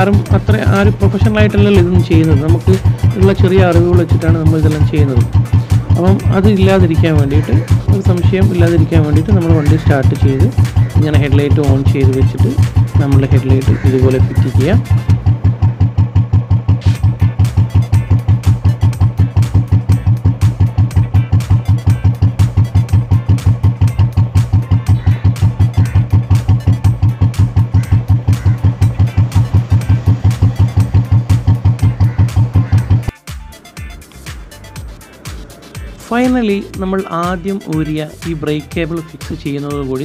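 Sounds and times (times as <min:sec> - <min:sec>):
motorcycle engine idling: 0:00.0 - 0:40.0.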